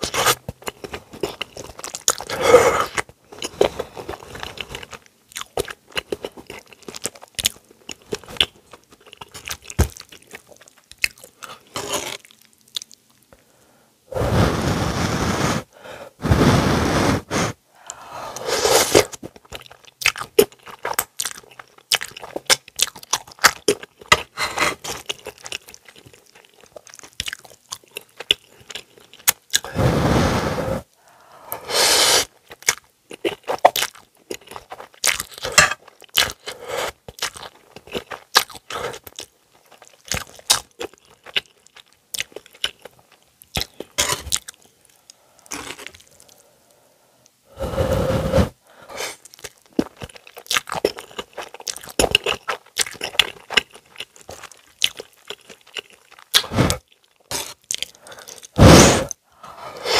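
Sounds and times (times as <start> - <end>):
close chewing of noodles: 0.0 - 13.2, 17.9 - 29.8, 31.7 - 46.5, 47.6 - 59.9
noodle slurp: 18.4 - 19.1, 58.6 - 59.9.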